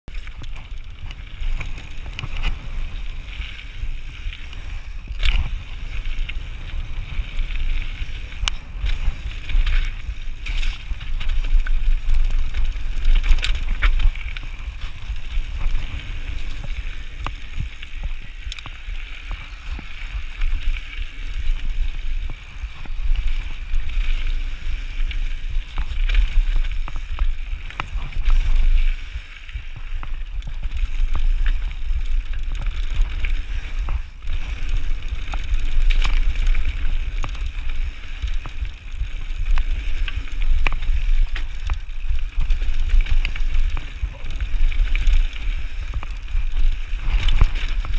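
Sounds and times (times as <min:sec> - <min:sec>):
bike rattling: 0:00.1 - 0:47.9
tyres crunching over stones: 0:00.1 - 0:47.9
wind rumble on microphone: 0:00.1 - 0:47.9.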